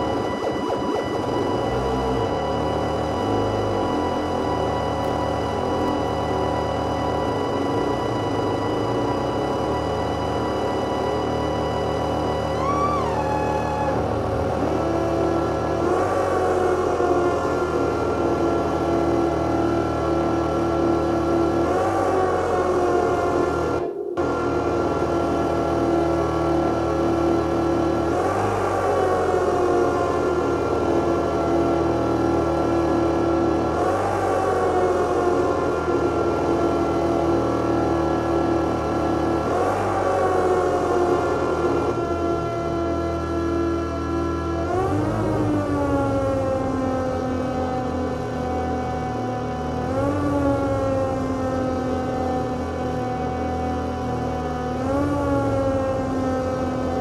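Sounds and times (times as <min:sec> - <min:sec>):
downward pitch sweep: 0:00.0 - 0:19.4
electronic drone music: 0:00.0 - 0:57.0.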